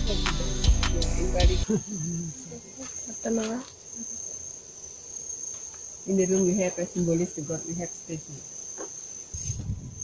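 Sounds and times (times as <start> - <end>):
music with heavy beat: 0.0 - 1.6
person's voice: 0.0 - 1.7
high-pitched insect drone: 0.0 - 10.0.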